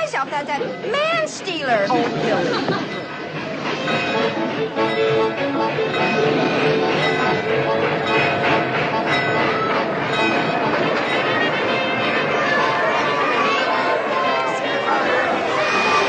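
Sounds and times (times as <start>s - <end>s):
background music: 0.0s - 16.0s
train pulling in: 0.0s - 16.0s
crowd cheering and calling out: 6.0s - 16.0s.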